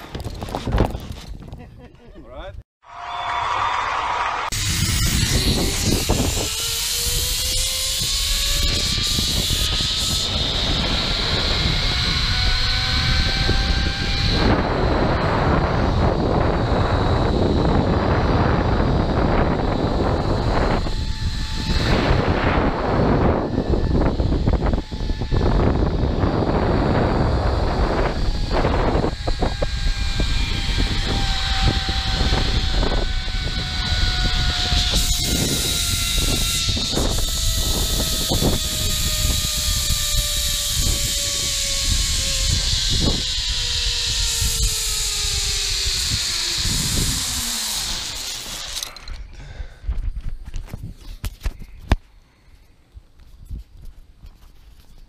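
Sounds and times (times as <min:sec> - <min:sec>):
wind noise on microphone: 0:00.0 - 0:02.6, 0:04.5 - 0:55.0
zipline pulley whine on cable: 0:02.9 - 0:49.4.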